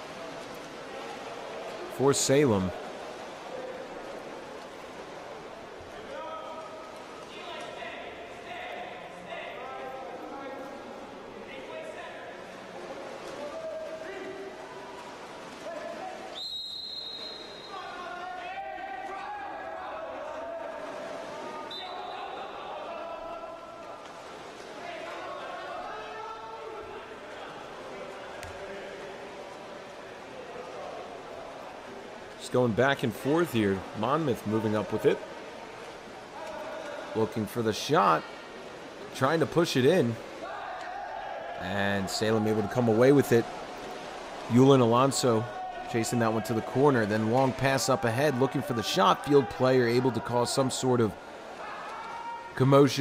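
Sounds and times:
referee's whistle blast: 16.3 - 17.8, 21.7 - 22.5
players calling out: 39.2 - 53.0.

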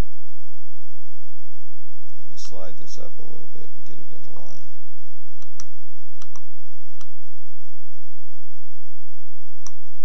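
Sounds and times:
computer mouse clicking: 5.4 - 7.1.

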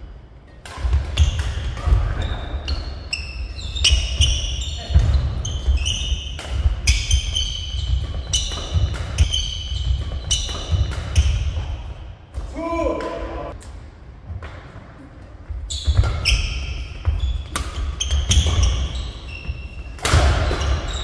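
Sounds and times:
rackets hitting shuttlecock: 0.6 - 13.8, 15.9 - 19.2, 19.9 - 21.0
shoes squeaking on floor: 1.2 - 12.0, 15.5 - 21.0
person shouting: 12.5 - 13.5.

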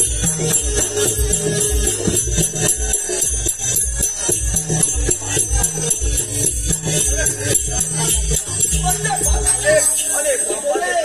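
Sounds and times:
jingling metal percussion: 0.0 - 11.0
steady drum beat: 0.0 - 11.0.

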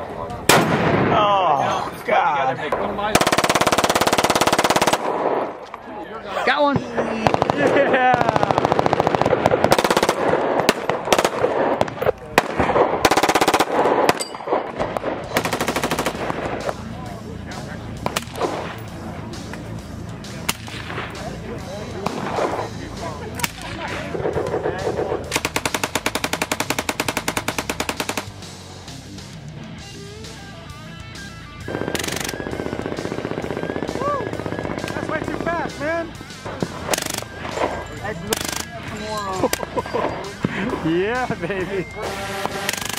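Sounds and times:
gunshots: 0.5 - 1.5, 3.1 - 5.6, 6.6 - 17.1, 18.0 - 19.0, 20.3 - 28.4, 31.7 - 38.8, 42.0 - 42.9
automatic gunfire burst: 3.2 - 5.5, 7.2 - 16.6, 24.2 - 28.3, 42.1 - 42.9.

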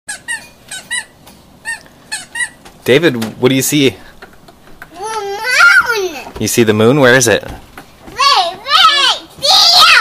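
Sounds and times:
plastic toy car squeaking: 0.1 - 2.7.

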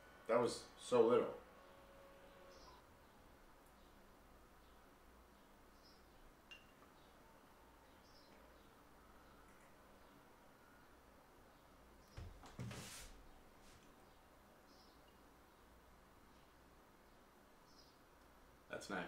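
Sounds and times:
low steady hum: 0.0 - 19.0
faint high chirps: 1.6 - 12.2.

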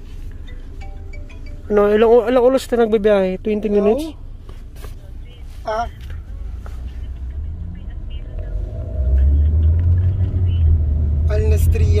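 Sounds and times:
car engine rumble: 0.0 - 12.0
road noise inside car: 0.0 - 12.0.

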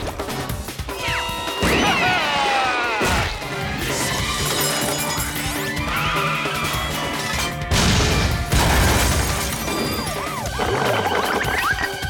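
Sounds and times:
cartoon music: 9.6 - 12.0.

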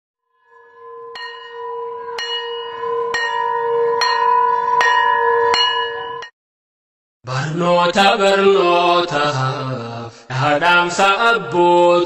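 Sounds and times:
bell-like chime tones: 0.4 - 6.3.

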